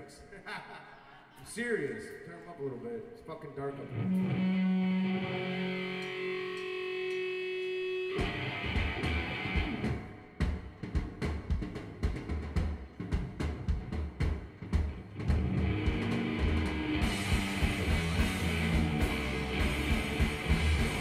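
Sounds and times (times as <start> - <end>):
electric guitars and bass: 3.8 - 10.2, 14.8 - 21.0
drum kit kick and snare: 8.2 - 21.0.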